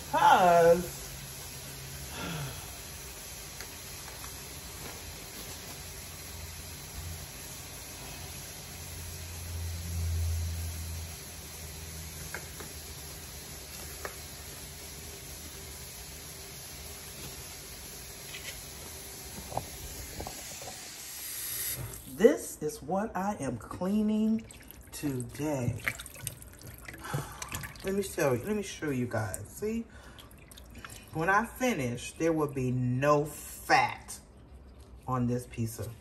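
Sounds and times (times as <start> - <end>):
faucet running into sink: 24.3 - 29.4.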